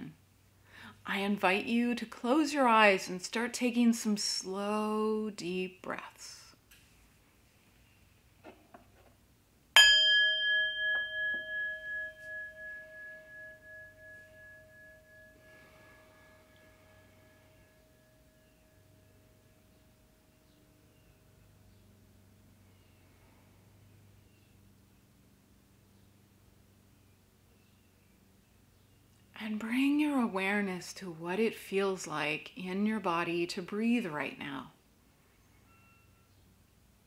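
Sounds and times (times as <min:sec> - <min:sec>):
singing bowl ringing: 0:09.8 - 0:21.5, 0:35.7 - 0:36.4.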